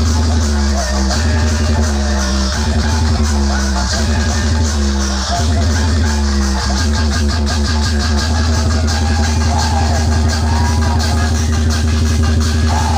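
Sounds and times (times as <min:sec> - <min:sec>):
loud electronic dance music: 0:00.0 - 0:12.9.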